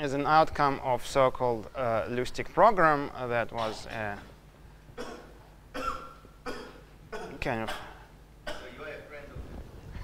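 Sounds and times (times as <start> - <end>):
short coughs: 5.0 - 8.8.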